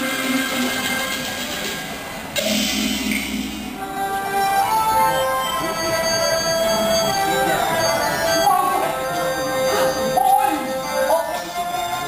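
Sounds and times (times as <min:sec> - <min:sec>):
ensemble sustained notes: 0:00.0 - 0:12.0.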